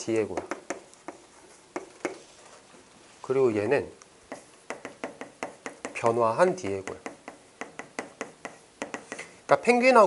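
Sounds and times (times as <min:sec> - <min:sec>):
marker tapping on chalkboard: 0:00.3 - 0:02.2, 0:04.3 - 0:09.3.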